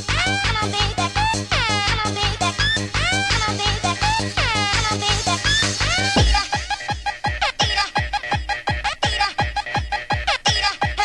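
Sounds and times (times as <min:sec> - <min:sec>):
fast electronic dance music: 0:00.0 - 0:11.0.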